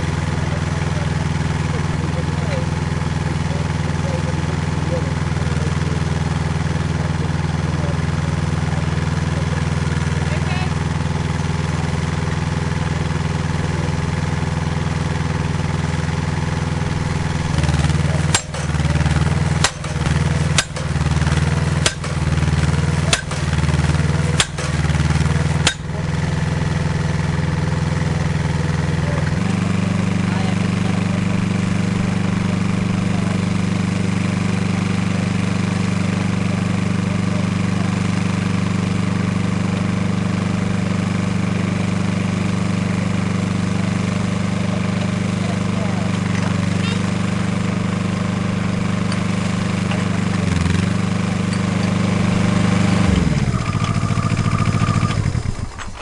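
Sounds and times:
drilling rig engine running: 0.0s - 56.0s
percussion hammer strikes: 17.5s - 26.3s.

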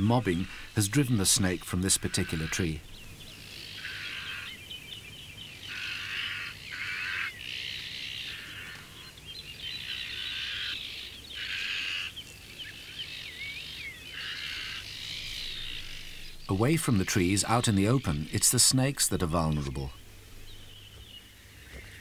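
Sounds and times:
harsh rasping bird calls: 0.0s - 22.0s.

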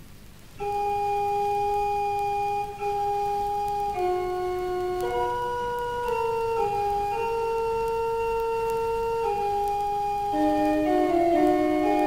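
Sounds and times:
vinyl surface hiss: 0.0s - 12.0s
pipe organ long held notes: 0.6s - 12.0s.

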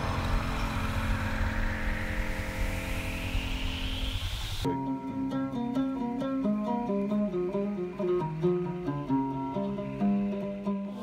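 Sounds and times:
hiss climbing in pitch: 0.0s - 4.7s
motorcycle engine at low speed: 0.0s - 4.7s.

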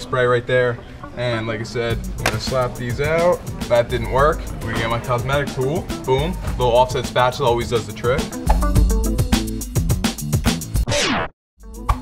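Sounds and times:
music with steady beat: 1.9s - 10.8s, 11.6s - 12.0s.

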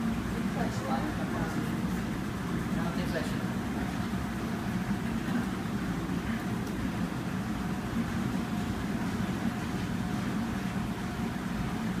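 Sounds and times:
faint hum: 0.0s - 12.0s
low rumbling background noise: 0.0s - 12.0s.

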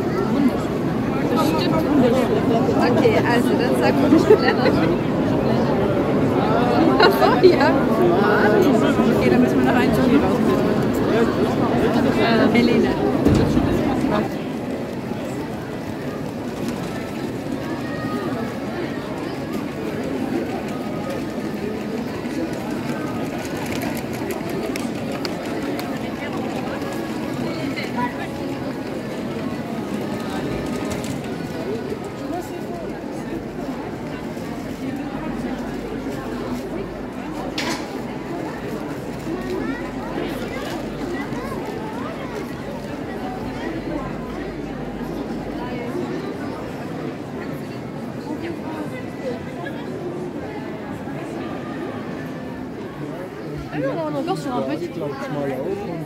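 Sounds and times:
babble of many voices: 0.0s - 56.0s.

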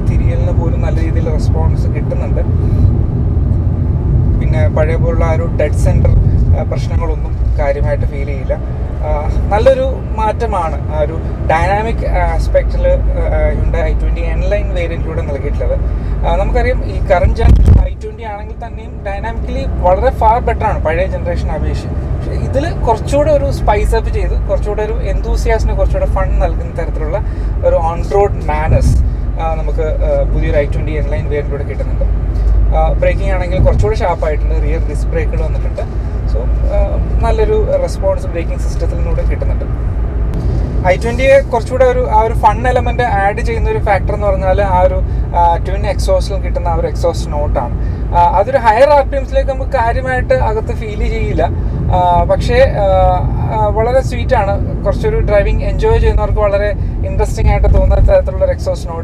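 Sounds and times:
man talking: 0.0s - 2.6s, 4.3s - 39.7s, 40.4s - 59.0s
car engine rumble: 0.0s - 59.0s
road noise inside car: 0.0s - 59.0s.

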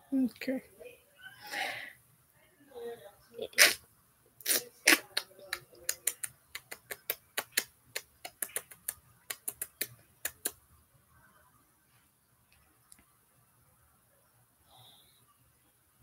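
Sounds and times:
sharp clicks: 5.9s - 10.6s.

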